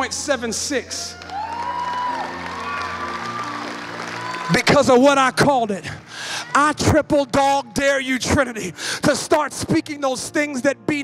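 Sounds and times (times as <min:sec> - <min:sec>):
congregation cheering and applauding: 0:00.0 - 0:08.1
whoops: 0:01.1 - 0:04.7.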